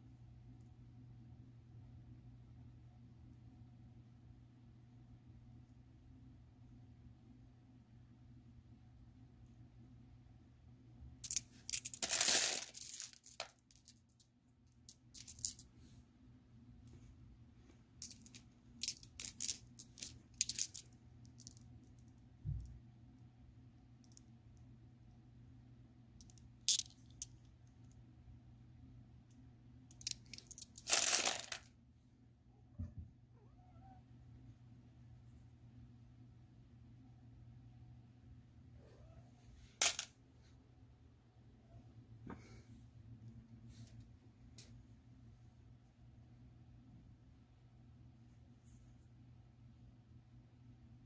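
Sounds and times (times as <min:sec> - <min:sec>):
faint low hum: 0:00.0 - 0:51.0.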